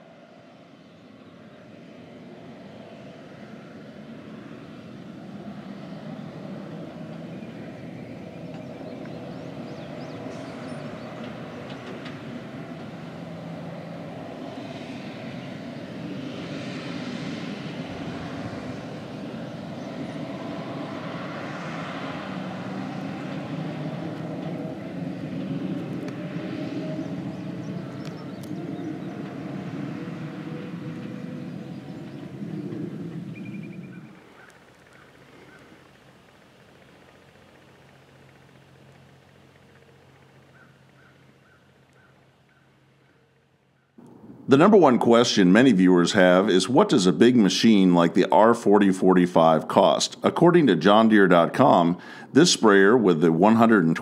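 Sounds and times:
diesel engine running: 2.6s - 54.0s.

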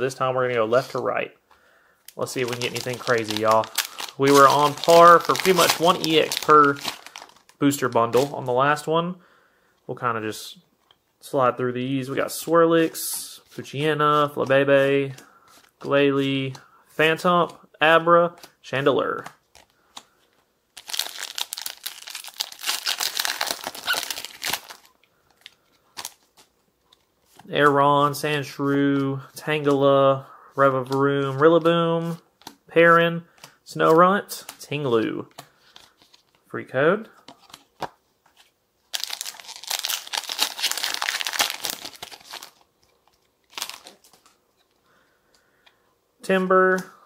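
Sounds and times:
foil wrapper crinkling: 2.1s - 8.4s, 20.8s - 26.5s, 38.9s - 44.4s.

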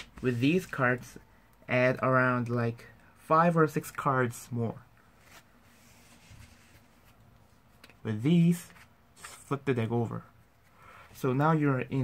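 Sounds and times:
playing cards rustling: 5.1s - 9.6s.

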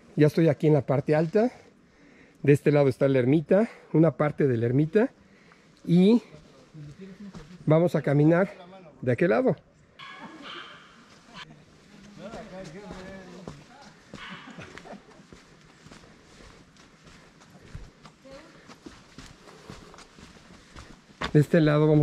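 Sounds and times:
footsteps on dirt and stone: 10.4s - 22.0s.

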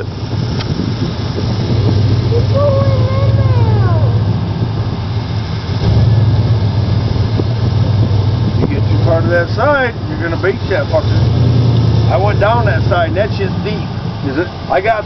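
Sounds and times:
truck engine rumbling: 0.0s - 15.0s
voice calling out: 2.3s - 4.2s.

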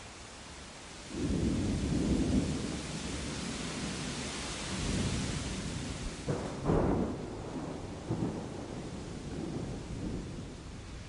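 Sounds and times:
rain hissing: 0.0s - 11.0s
thunder rumbling: 4.8s - 10.9s.

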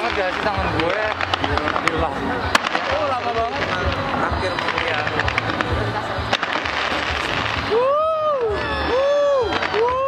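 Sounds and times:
fireworks bursting and crackling: 0.0s - 10.0s
sharp firework bang: 1.0s - 4.0s.

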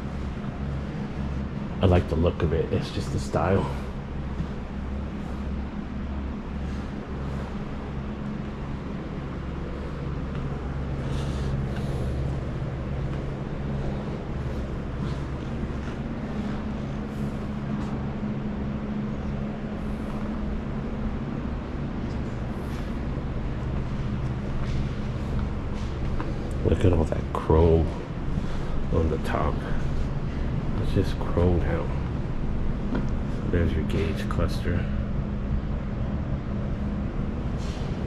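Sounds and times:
machinery hum and drone: 0.0s - 38.0s.

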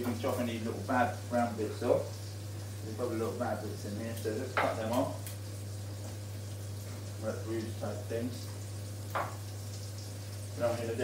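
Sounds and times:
fish frying in a pan: 0.0s - 11.0s.

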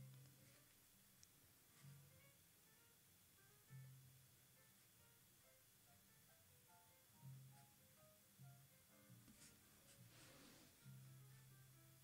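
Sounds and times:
quiet music: 0.0s - 12.0s
ink brush scratching on card: 9.3s - 10.8s.

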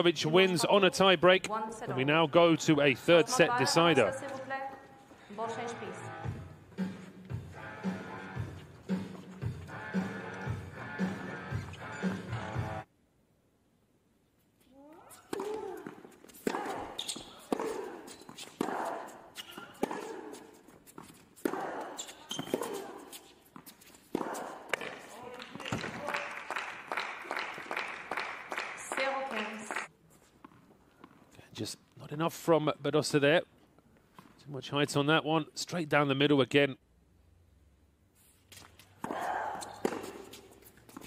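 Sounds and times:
racket striking tennis ball: 15.3s - 26.0s, 39.0s - 41.0s
shoe squeaks on court: 16.2s - 18.7s, 19.3s - 24.1s.

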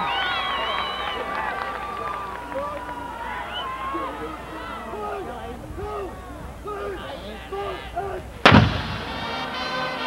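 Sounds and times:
voices: 0.0s - 10.0s
marching band percussion and brass: 8.4s - 10.0s.

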